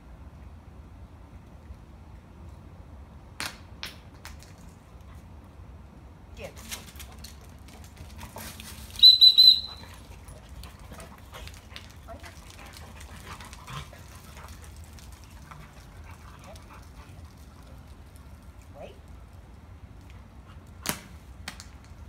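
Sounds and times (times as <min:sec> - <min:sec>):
dog whistle pips: 0:09.0 - 0:09.9
dog claws ticking on pavement: 0:09.8 - 0:22.0.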